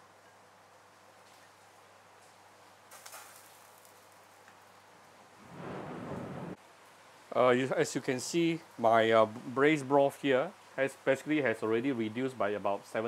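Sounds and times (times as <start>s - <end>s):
background hiss: 0.0s - 13.0s.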